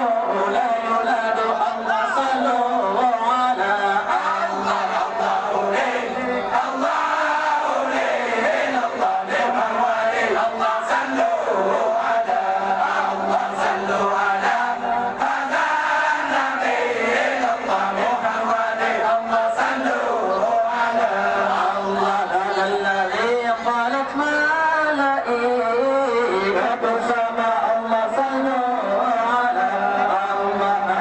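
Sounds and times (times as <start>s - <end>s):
men chanting together: 0.0s - 31.0s.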